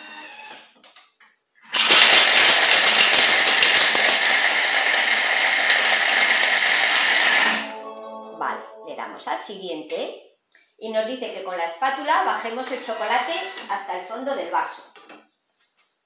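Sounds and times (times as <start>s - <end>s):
food processor grinding chocolate: 1.7s - 7.7s, 12.5s - 13.7s.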